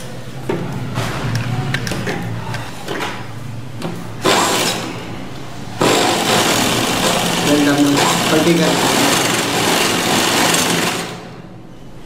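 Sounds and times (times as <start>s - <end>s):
sewing machine stitching: 5.8s - 11.3s.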